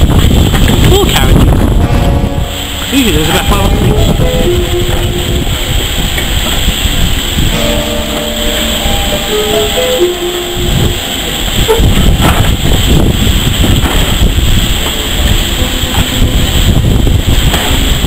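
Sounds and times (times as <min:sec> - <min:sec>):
train wheels rumbling over rail joints: 0:00.0 - 0:18.0
steady pitched notes: 0:01.6 - 0:18.0.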